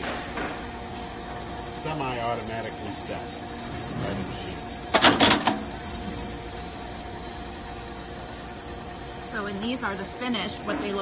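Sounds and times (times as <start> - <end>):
machine humming: 0.0 - 11.0.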